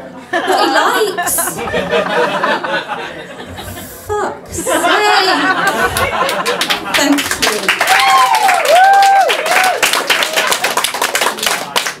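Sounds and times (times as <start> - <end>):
audience clapping: 5.6 - 12.0
whooping cheers: 7.8 - 10.3.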